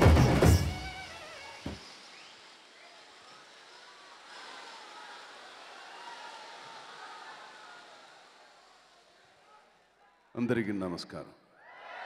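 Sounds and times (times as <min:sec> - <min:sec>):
faint crowd murmur: 0:02.6 - 0:10.4.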